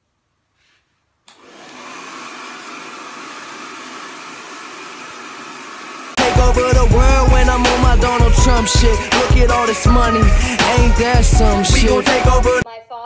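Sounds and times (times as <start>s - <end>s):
hair dryer running: 1.3s - 12.2s.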